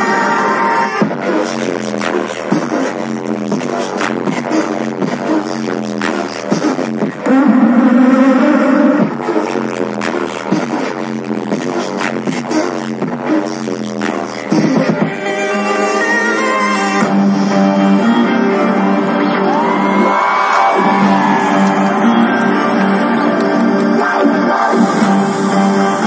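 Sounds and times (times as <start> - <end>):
live band music: 14.0 - 26.0.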